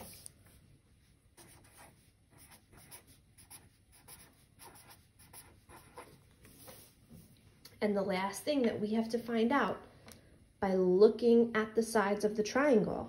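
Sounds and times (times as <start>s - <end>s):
marker writing on paper: 0.0s - 0.3s, 1.4s - 7.0s.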